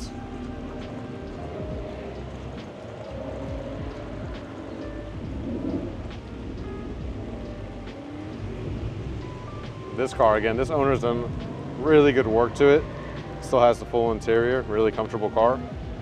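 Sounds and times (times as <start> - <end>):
faint music: 0.0 - 16.0
low rumble: 0.0 - 16.0
raindrops ticking on microphone: 0.0 - 16.0
steady rain: 0.0 - 16.0.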